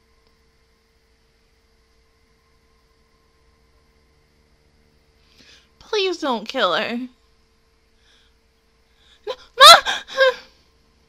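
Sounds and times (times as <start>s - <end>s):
woman gasping cry: 9.2s - 10.6s.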